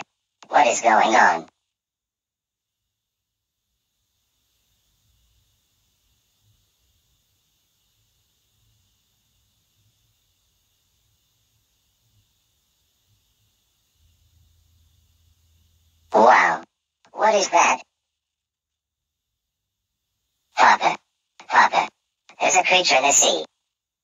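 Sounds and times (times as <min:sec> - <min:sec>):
faint steady hiss: 0:02.7 - 0:18.3.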